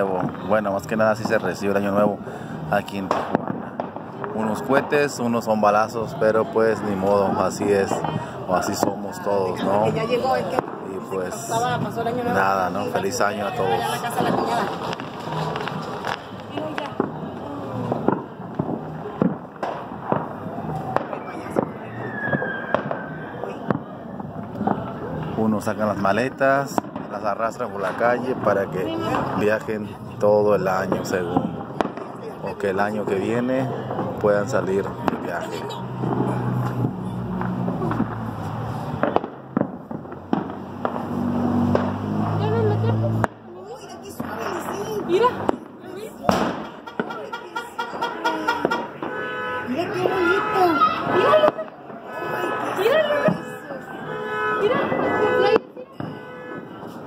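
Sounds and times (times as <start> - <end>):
distant fireworks and gunshots: 0.0 - 57.0
long falling whistle: 21.2 - 23.6.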